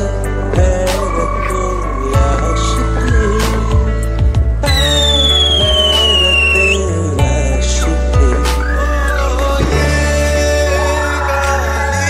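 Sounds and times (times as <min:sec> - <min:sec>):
background music: 0:00.0 - 0:12.0
firework whistling down in pitch: 0:04.7 - 0:06.8.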